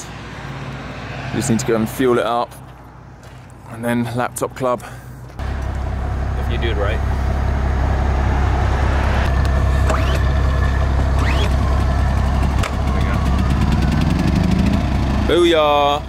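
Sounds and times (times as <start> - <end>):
engine idling: 5.3 - 16.0
rising tone: 5.4 - 15.5.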